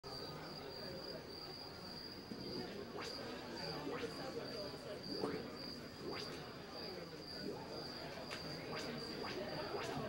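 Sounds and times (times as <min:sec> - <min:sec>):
faint low murmur: 0:02.2 - 0:10.0.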